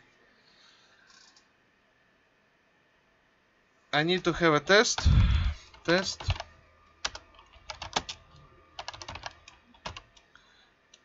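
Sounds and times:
typing on computer keyboard: 0:05.7 - 0:10.3.

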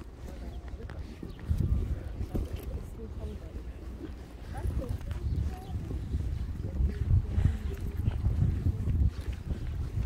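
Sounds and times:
camel footfalls on dirt: 0:00.0 - 0:10.0.

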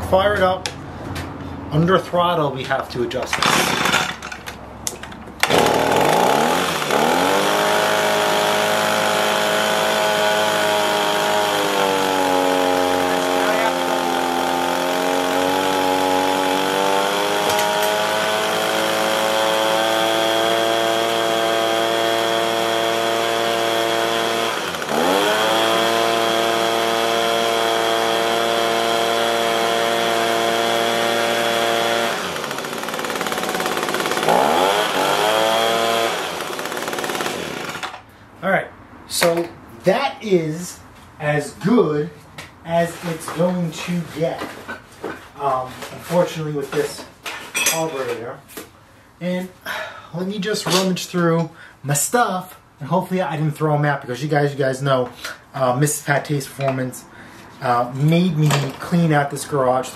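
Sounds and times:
leaf blower engine running: 0:03.4 - 0:04.1, 0:05.4 - 0:38.0.

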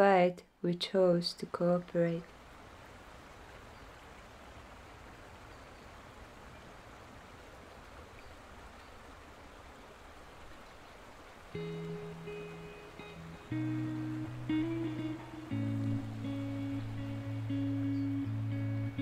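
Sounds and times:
faint background noise: 0:00.0 - 0:19.0
acoustic guitar chords: 0:11.6 - 0:19.0.

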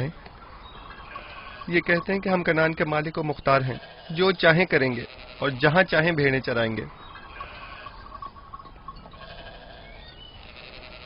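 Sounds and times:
sheep bleating: 0:00.9 - 0:02.0, 0:03.5 - 0:05.9, 0:07.2 - 0:08.2, 0:09.0 - 0:11.0.

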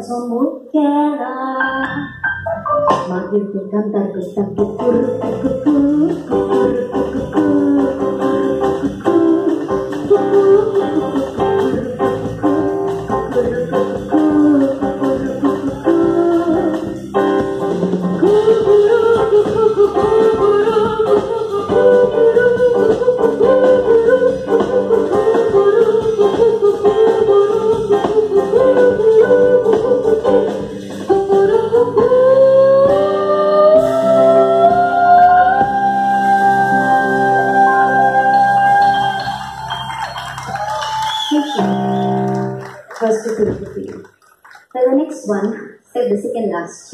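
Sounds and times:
woman singing: 0:00.0 - 0:02.1, 0:02.9 - 0:17.3, 0:18.0 - 0:39.5
live band music: 0:01.8 - 0:03.4, 0:04.2 - 0:44.2.

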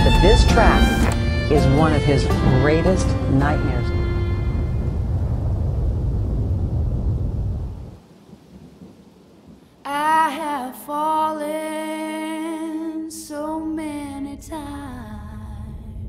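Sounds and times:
held low note: 0:00.0 - 0:07.4
thunder rumbling: 0:00.0 - 0:10.5, 0:13.6 - 0:16.0
rain: 0:00.0 - 0:16.0
person singing slow song: 0:09.8 - 0:16.0.

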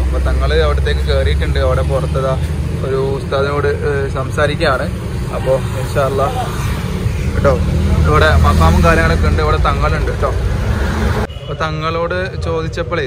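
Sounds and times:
man talking: 0:00.0 - 0:10.5.

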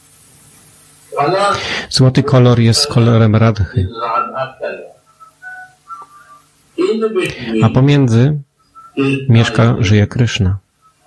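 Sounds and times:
man speaking: 0:01.1 - 0:06.0, 0:06.8 - 0:10.6
faint short whistle-like tones: 0:05.1 - 0:06.5.

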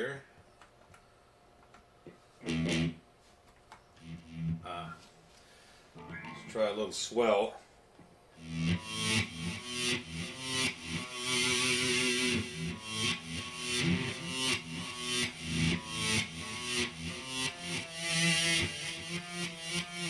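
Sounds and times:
distorted electric guitar riff: 0:02.4 - 0:03.0, 0:04.0 - 0:05.0, 0:06.0 - 0:06.9, 0:08.4 - 0:20.0.

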